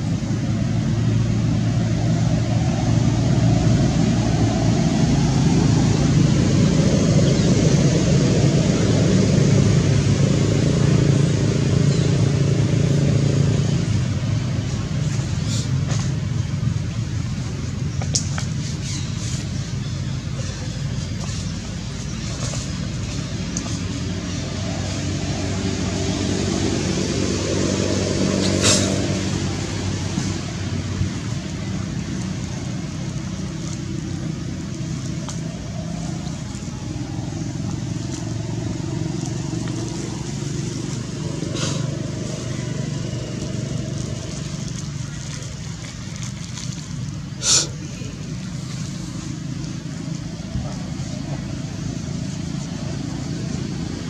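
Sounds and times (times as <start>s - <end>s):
vehicle engine droning: 0.0s - 54.0s.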